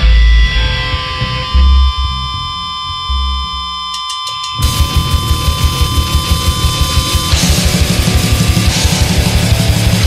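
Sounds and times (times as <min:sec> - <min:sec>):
low bass notes: 0:00.0 - 0:03.9, 0:04.6 - 0:10.0
amplifier feedback tone: 0:00.0 - 0:10.0.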